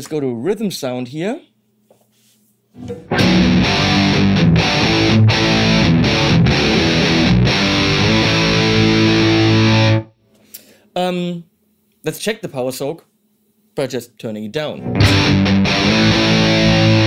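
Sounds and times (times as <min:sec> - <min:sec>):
distorted electric guitar riff: 0:02.8 - 0:10.1, 0:14.8 - 0:17.0.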